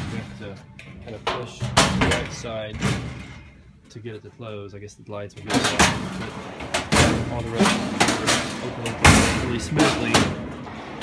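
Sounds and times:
metal drawer sliding rumble: 5.5 - 11.0.

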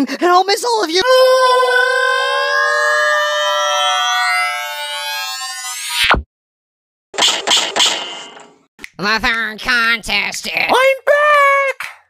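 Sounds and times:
cartoon character screaming: 1.0 - 5.5.

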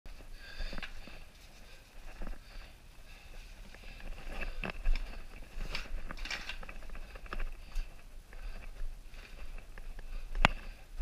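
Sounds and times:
close breathing: 0.1 - 11.0.

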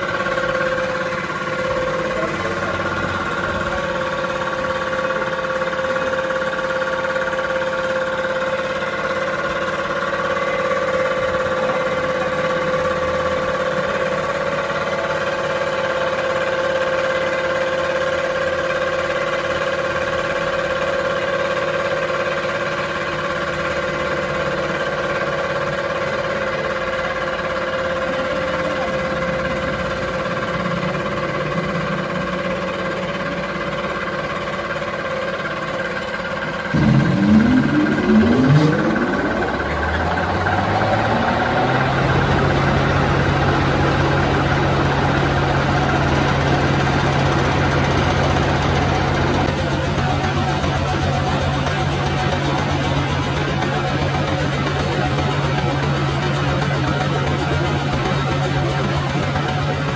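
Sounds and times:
mid-pitched machine whine: 0.0 - 59.9
machine motor hum: 23.3 - 59.9.

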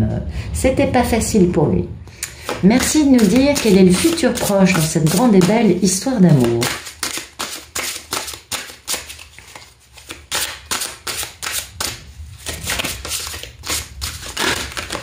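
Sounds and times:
cards being shuffled by hand: 2.3 - 15.0.

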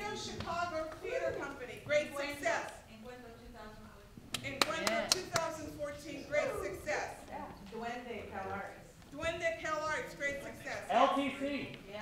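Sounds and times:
sharp handclaps: 4.3 - 5.5.

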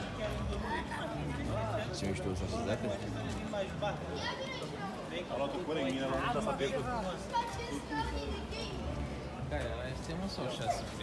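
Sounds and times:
people talking and calling: 0.0 - 11.0.

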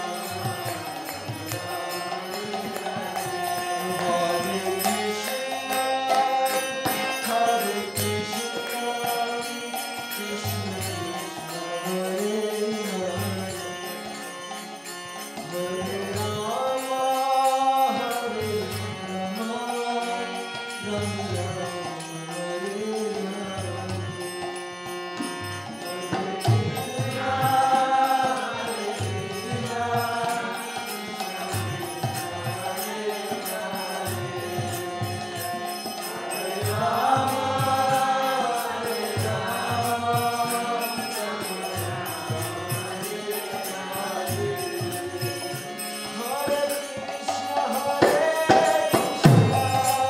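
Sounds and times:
man chanting into a microphone: 0.0 - 14.0, 46.1 - 50.0
man chanting: 0.0 - 14.2, 15.4 - 24.5, 25.2 - 50.0
harmonium drone: 0.0 - 50.0.

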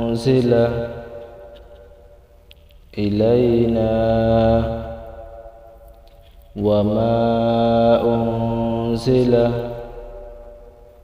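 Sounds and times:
man chanting recitation: 0.0 - 1.4, 2.9 - 5.5, 6.6 - 10.3.

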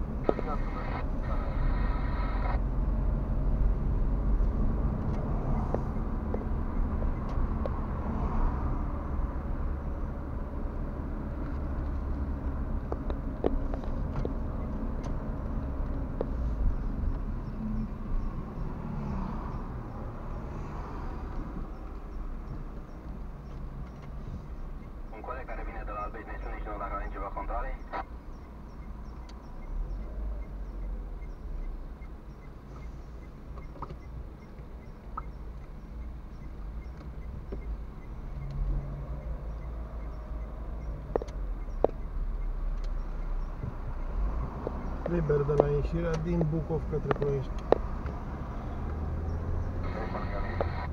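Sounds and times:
car engine and road rumble: 0.0 - 50.9.

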